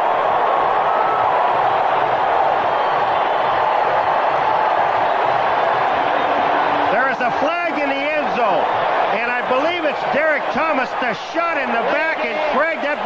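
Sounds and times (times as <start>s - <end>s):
stadium crowd noise: 0.0s - 13.0s
man talking: 6.9s - 13.0s.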